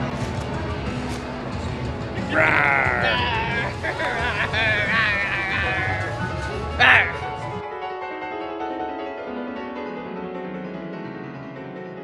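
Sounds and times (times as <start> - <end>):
background music: 0.0 - 12.0
person's high wavering voice: 2.2 - 6.1, 6.8 - 7.2.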